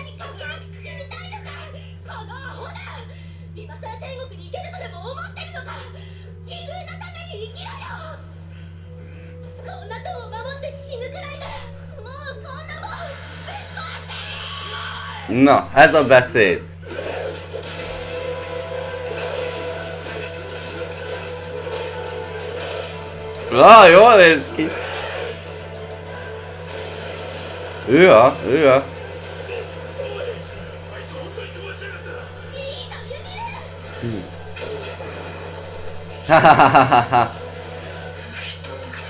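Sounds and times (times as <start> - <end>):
faint background music: 0.0 - 39.0
steady low hum: 0.0 - 39.0
soundtrack music: 17.2 - 32.5.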